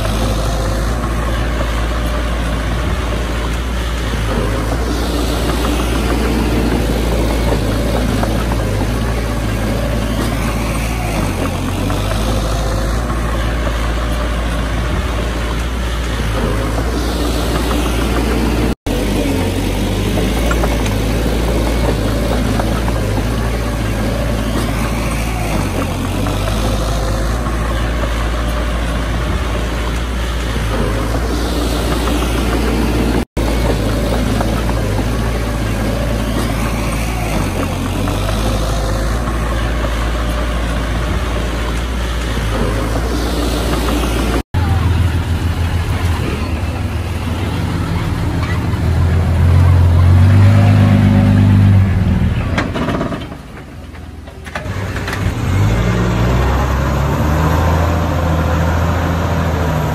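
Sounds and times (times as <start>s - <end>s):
bulldozer diesel engine under load: 0.0s - 59.9s.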